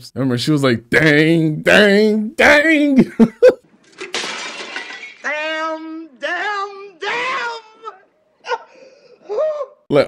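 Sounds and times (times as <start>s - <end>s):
glass bowl smashing: 3.8s - 5.6s
woman shouting in grief: 6.9s - 8.7s.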